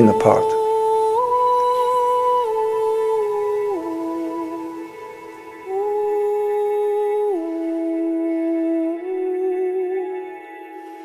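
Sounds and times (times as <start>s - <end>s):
wordless humming voice: 0.0s - 1.3s
sustained background tones: 0.0s - 11.0s.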